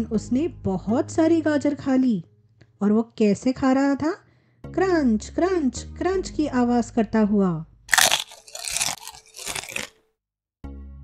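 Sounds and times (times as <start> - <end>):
soft background music: 0.0 - 8.2
carrot crunching: 7.9 - 10.0.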